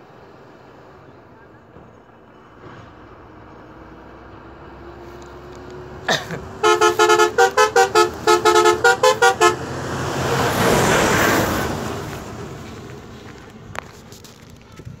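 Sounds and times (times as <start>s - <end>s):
bus passing by: 0.0s - 15.0s
bus musical horn: 6.0s - 11.8s.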